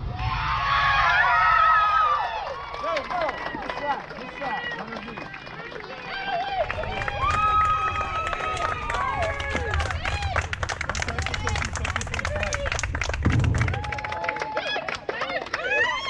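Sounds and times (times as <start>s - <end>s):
people shouting and cheering: 0.0s - 16.0s
people clapping: 1.0s - 16.0s.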